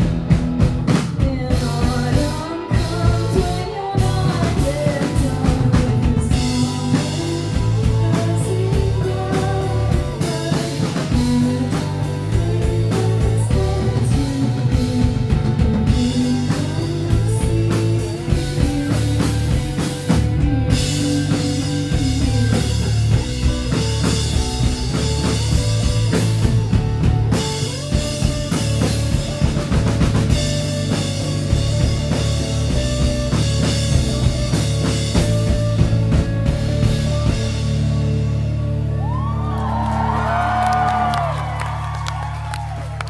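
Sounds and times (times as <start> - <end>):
electric guitars: 0.0 - 43.0.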